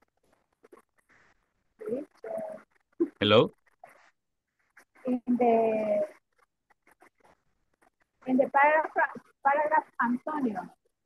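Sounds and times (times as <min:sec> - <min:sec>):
person speaking: 0:03.2 - 0:03.5
mouse scroll wheel ticking: 0:04.7 - 0:10.6.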